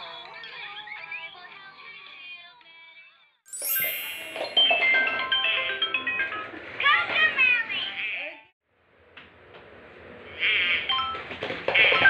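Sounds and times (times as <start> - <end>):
bright background music: 3.5 - 6.8.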